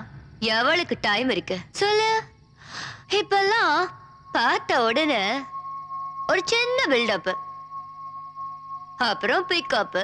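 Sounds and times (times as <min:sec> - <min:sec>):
faint steady tone: 0:00.0 - 0:10.0
woman singing wavering phrases: 0:06.3 - 0:07.4, 0:09.0 - 0:10.0.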